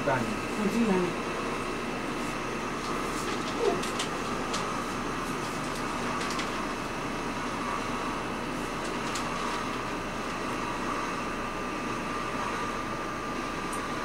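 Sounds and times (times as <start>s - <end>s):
room noise hum: 0.0s - 14.0s
thin steady whine: 0.0s - 14.0s.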